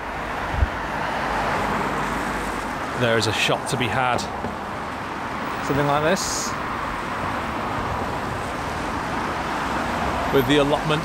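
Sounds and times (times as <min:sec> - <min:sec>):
road traffic hiss: 0:00.0 - 0:11.0.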